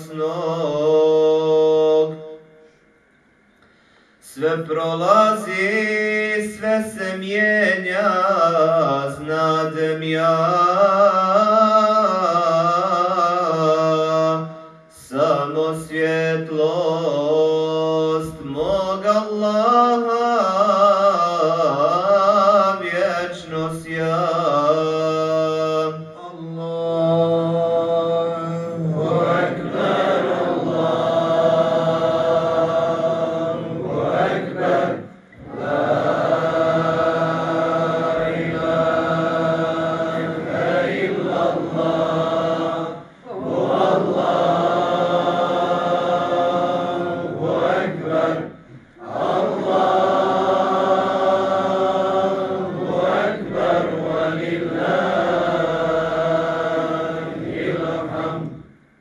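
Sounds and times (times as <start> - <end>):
man chanting into a microphone: 0.0 - 2.5, 4.2 - 29.0
man breathing: 3.6 - 4.2.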